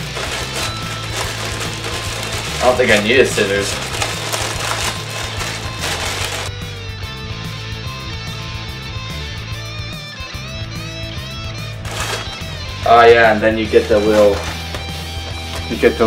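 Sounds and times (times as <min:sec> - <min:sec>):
plastic mailer rustled and torn: 0:00.0 - 0:06.6, 0:11.8 - 0:12.5, 0:13.7 - 0:15.9
background music with bass and guitar: 0:00.0 - 0:16.0.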